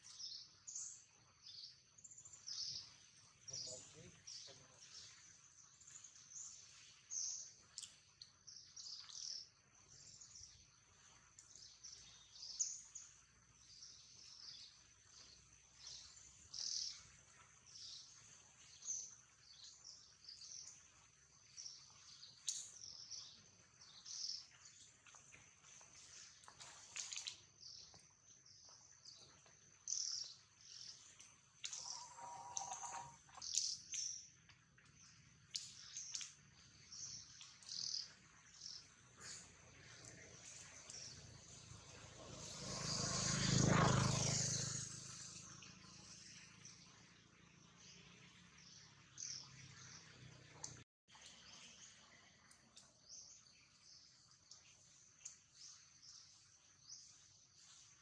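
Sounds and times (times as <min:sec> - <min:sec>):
faint bird chirps: 0:00.0 - 0:43.1
lower pitched bird call: 0:31.6 - 0:34.0.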